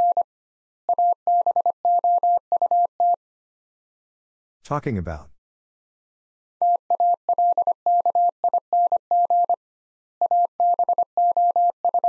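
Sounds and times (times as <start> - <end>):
morse code tone: 10.2 - 12.0.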